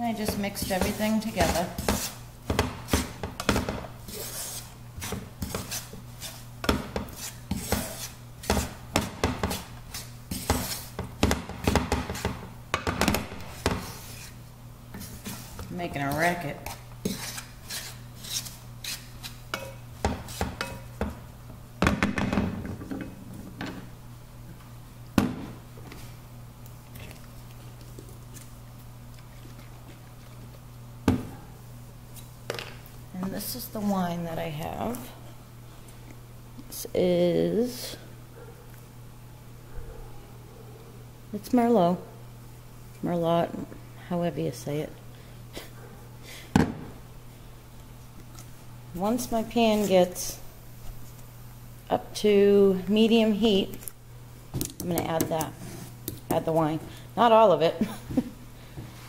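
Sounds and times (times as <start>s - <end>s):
steady low hum: 0.0s - 59.0s
spatula scraping a frying pan: 0.2s - 11.0s, 13.4s - 14.4s, 15.0s - 20.9s.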